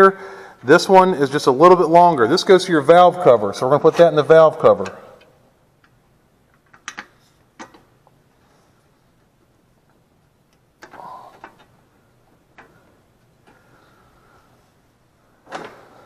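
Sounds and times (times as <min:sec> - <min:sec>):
metallic clicks and taps of bolt: 0:04.8 - 0:07.9.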